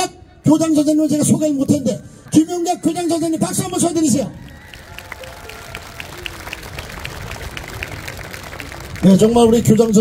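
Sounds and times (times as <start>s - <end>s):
crowd applauding: 2.2s - 10.0s.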